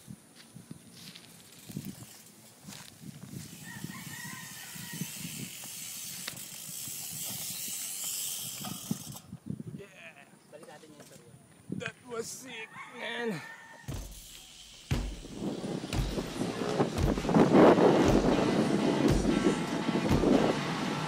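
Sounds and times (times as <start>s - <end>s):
bike dragged through grass: 0.9s - 9.2s
rooster crowing: 3.6s - 5.2s, 12.6s - 14.5s
steady hiss: 13.9s - 18.8s.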